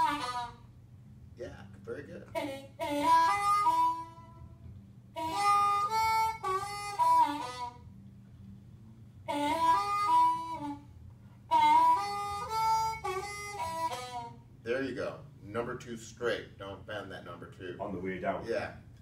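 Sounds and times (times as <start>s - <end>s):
blues harmonica: 0.0s - 0.9s, 2.0s - 14.6s.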